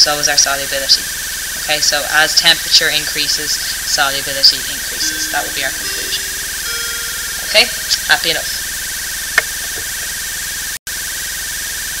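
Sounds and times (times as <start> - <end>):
recording hiss: 0.0 - 8.4.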